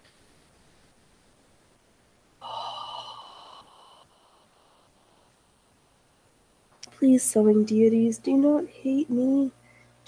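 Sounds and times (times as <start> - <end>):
woman groaning: 2.4 - 4.9.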